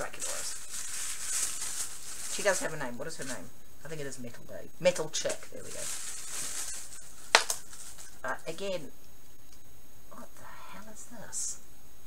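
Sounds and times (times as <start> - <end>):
hands rustling packaging: 0.0 - 3.4, 5.4 - 8.2.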